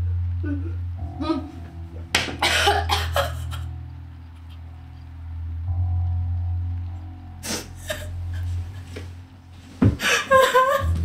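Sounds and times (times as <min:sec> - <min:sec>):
low musical drone: 0:00.0 - 0:11.0
woman coughing hard: 0:02.4 - 0:03.6.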